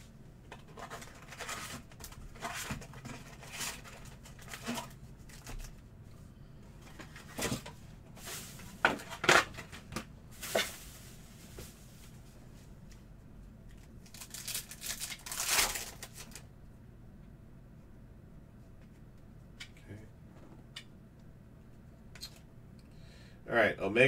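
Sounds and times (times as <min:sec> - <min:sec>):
card packs crinkling: 0:14.0 - 0:16.4.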